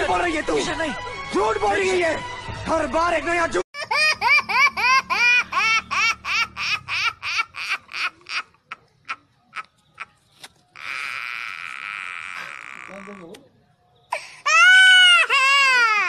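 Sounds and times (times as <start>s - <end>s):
high-pitched laughter: 3.8s - 10.2s.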